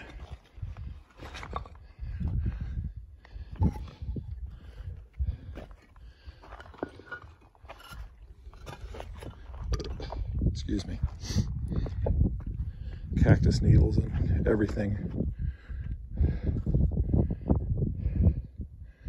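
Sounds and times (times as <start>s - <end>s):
wind buffeting microphone: 0.0s - 6.7s, 7.8s - 19.0s.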